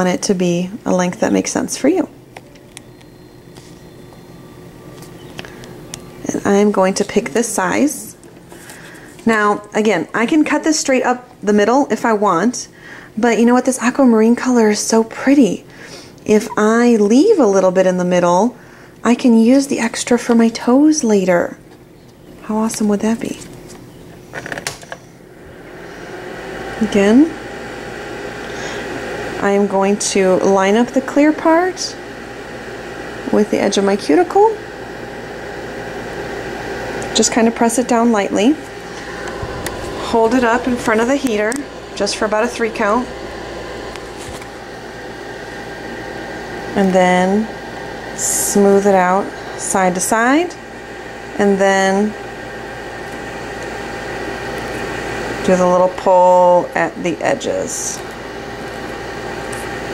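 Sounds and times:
faint hum: 0.0s - 27.5s, 35.3s - 52.2s
electric fan heater rushing: 0.0s - 59.9s.

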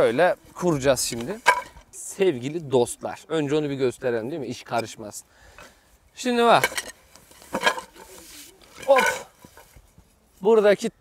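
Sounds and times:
wooden slats knocking together: 1.1s - 1.8s, 6.6s - 6.9s, 7.5s - 8.2s.

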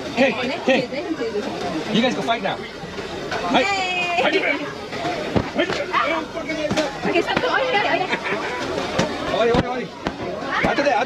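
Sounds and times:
inflatable bats striking: 5.3s - 5.9s
children's voices: 7.0s - 9.3s.

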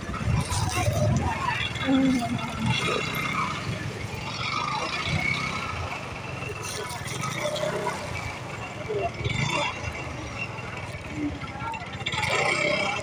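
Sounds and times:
low vehicle engine rumble: 0.0s - 13.0s
people talking: 0.0s - 13.0s.

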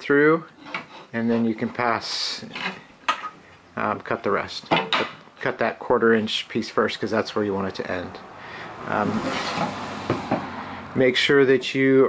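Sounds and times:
wood sliding on metal: 0.6s - 3.4s, 9.0s - 10.6s.

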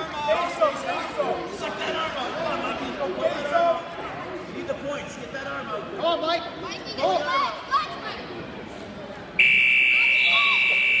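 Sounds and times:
scoreboard buzzer: 9.4s - 11.0s.

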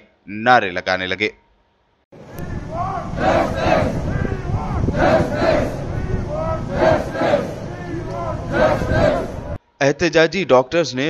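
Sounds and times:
crowd noise: 2.2s - 9.6s
protesters chanting in unison: 2.2s - 9.6s.

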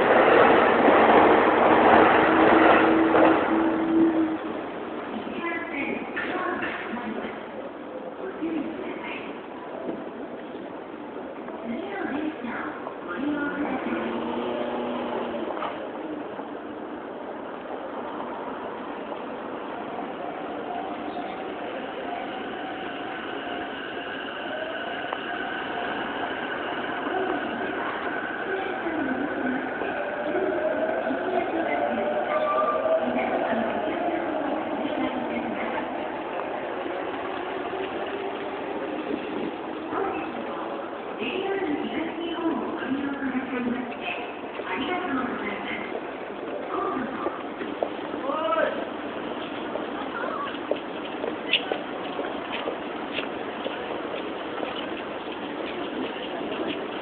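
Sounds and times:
train whine gliding in pitch: 0.0s - 5.0s, 13.7s - 16.0s, 18.3s - 40.9s
electric train rumble: 0.0s - 57.0s.

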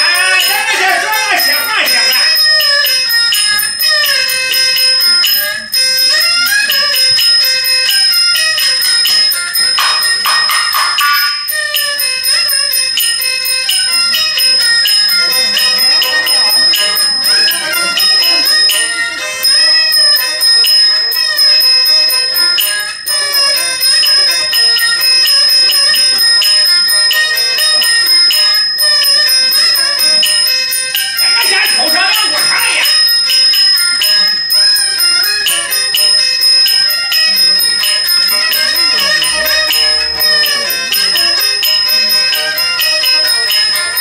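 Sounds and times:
rapid small percussion clatter: 0.0s - 44.0s
steady high metallic ring: 0.0s - 44.0s
wavering instrumental melody: 0.0s - 44.0s.

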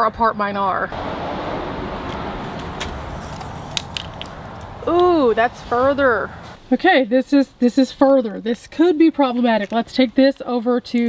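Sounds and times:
low outdoor rumble: 0.6s - 6.9s.

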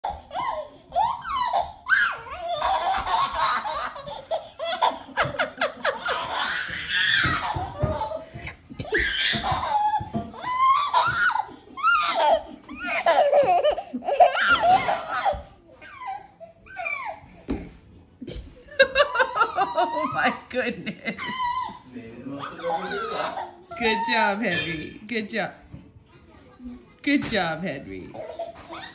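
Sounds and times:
baby laughing: 0.0s - 17.2s, 19.0s - 21.8s, 22.4s - 23.8s, 28.2s - 28.9s.

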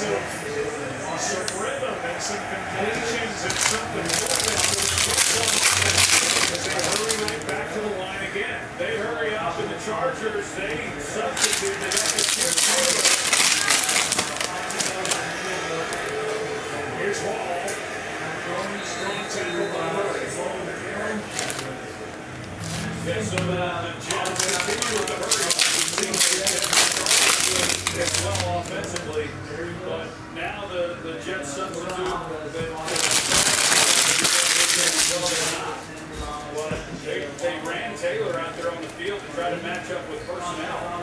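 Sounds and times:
rushes of crowd noise: 0.0s - 33.7s
television commentators talking: 0.0s - 41.0s.

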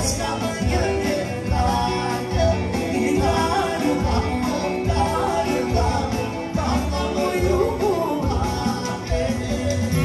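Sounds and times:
keyboard backing: 0.0s - 10.0s.

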